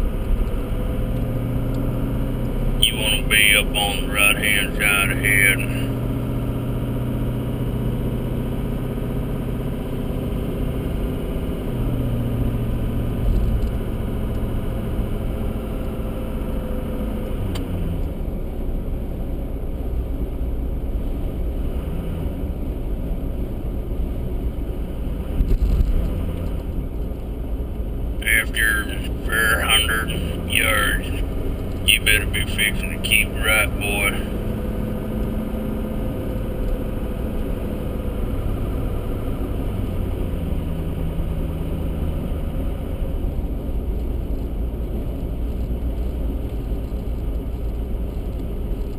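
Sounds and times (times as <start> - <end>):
car engine and tyre noise: 0.0 - 48.9.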